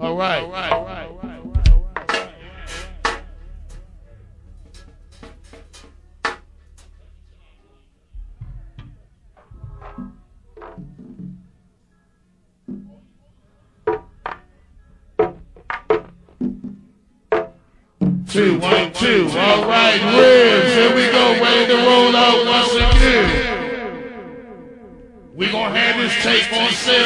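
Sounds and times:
muffled voices: 0:00.0 - 0:10.8, 0:17.6 - 0:27.0
drum and percussion hits: 0:00.7 - 0:02.4, 0:15.2 - 0:20.9, 0:22.7 - 0:25.4
steady low hum: 0:18.4 - 0:26.1.

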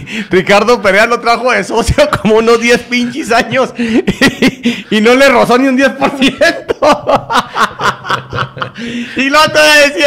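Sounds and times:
man chuckling: 0:06.0 - 0:09.2.

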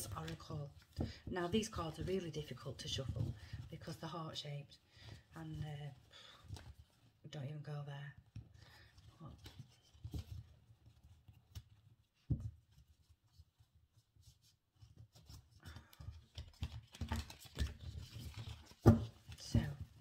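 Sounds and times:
cards being shuffled: 0:14.8 - 0:20.0.

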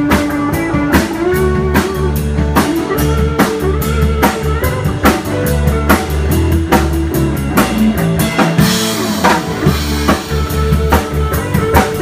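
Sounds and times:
drum kit beat: 0:00.0 - 0:12.0
live blues-rock band playing: 0:00.0 - 0:12.0.

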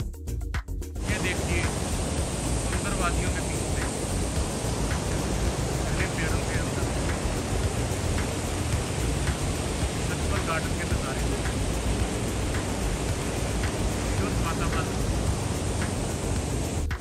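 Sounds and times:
water rushing from fountains: 0:01.0 - 0:17.0.

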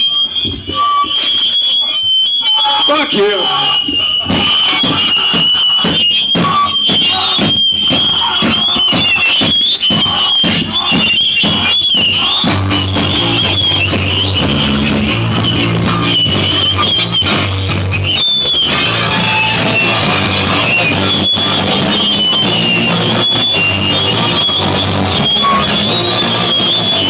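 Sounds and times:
guitar feedback squeal: 0:00.0 - 0:27.0
bass and guitar riff: 0:02.6 - 0:27.0
drum and cymbal hits: 0:02.6 - 0:27.0
live rock band playing: 0:03.0 - 0:27.0.

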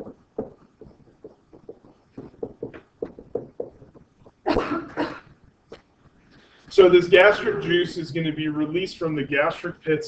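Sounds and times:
man coughing: 0:07.2 - 0:07.9.

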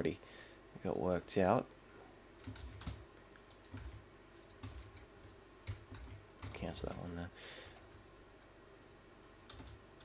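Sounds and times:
keyboard and mouse clicks: 0:02.4 - 0:07.0, 0:07.8 - 0:10.0.

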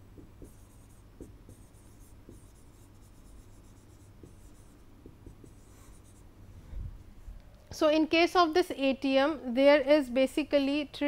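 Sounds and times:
stylus scratching on screen: 0:00.4 - 0:06.2
stylus tapping: 0:05.0 - 0:05.6.

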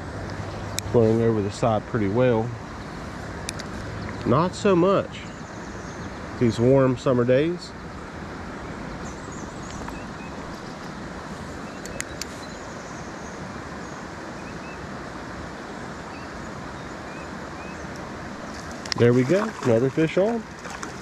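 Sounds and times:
creek water rushing: 0:00.0 - 0:21.0
sharp clicks: 0:11.8 - 0:12.3.

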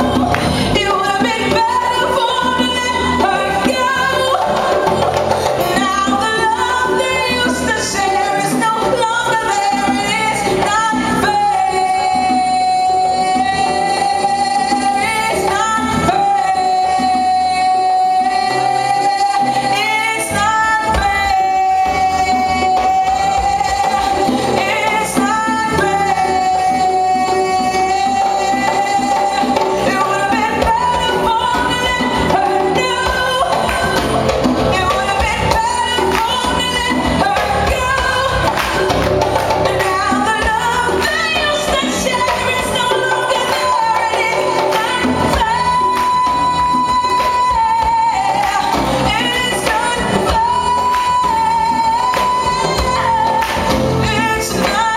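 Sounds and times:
conga and band accompaniment: 0:00.0 - 0:54.9
guitar: 0:00.0 - 0:54.9
woman singing soul: 0:00.0 - 0:54.9.

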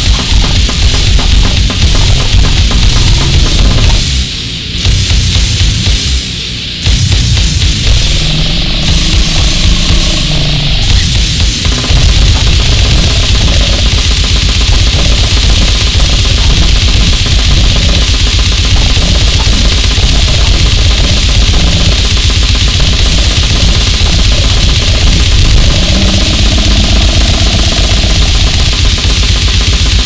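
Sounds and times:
distorted guitar: 0:00.0 - 0:30.0
fast dense drumming: 0:00.0 - 0:30.0.

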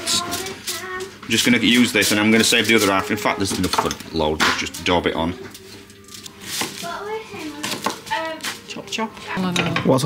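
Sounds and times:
kitchen utensils clinking: 0:01.3 - 0:08.6.

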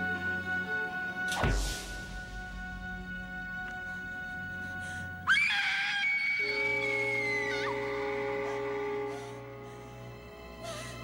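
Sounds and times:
woman screaming: 0:05.3 - 0:07.8.

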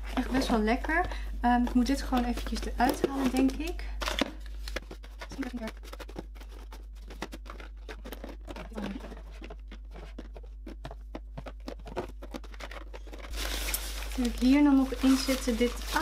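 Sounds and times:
plastic bottles and boxes handled: 0:00.0 - 0:16.0.

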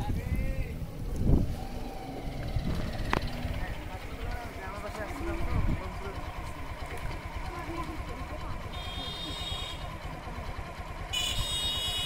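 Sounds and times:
faint voices talking: 0:00.0 - 0:11.4.

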